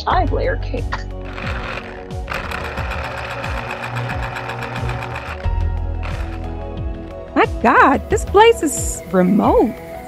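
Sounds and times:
background music: 0.0s - 10.0s
electric mixer whirring: 1.2s - 6.5s.

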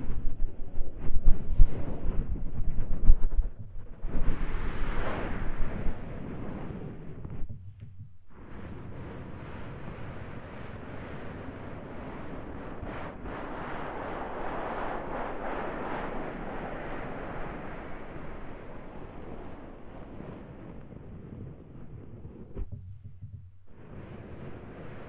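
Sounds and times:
hands rubbing microphone: 0.0s - 9.2s.

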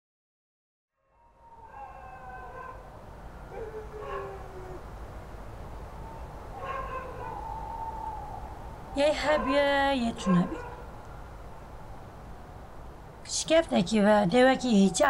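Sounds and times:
dogs howling in the distance: 1.0s - 12.8s, 14.2s - 15.0s.

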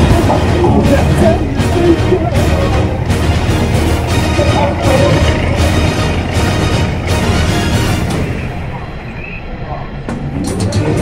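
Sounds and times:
people's voices: 0.0s - 11.0s
vehicle rumble: 0.0s - 11.0s.

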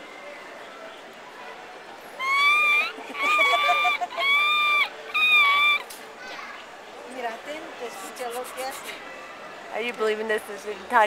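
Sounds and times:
monkey squeaky calls: 2.2s - 5.9s.

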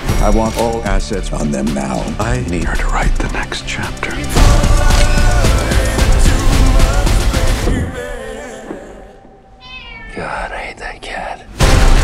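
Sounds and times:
loud music: 0.0s - 8.6s, 11.6s - 12.0s
cat meowing: 9.6s - 10.5s.

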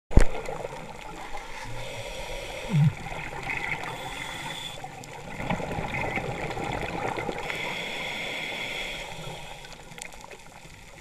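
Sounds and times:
muffled underwater water noise: 0.1s - 11.0s.

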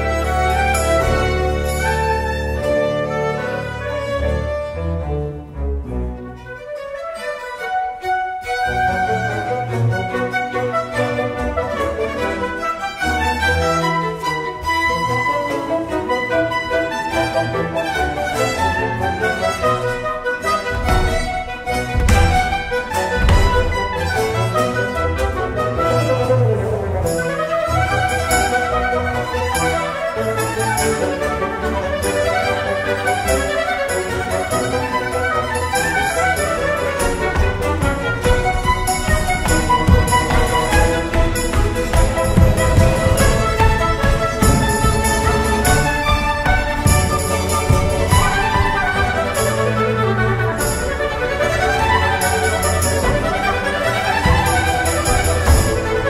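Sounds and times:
strings and winds baroque dance: 0.0s - 56.0s.

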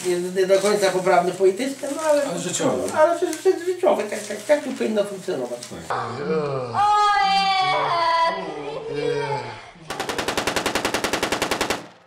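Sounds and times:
automatic rifle fire: 9.9s - 12.0s.

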